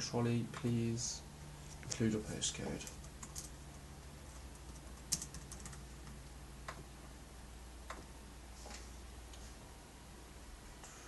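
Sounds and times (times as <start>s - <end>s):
faint laptop keyboard typing: 1.7s - 7.0s, 7.8s - 8.2s.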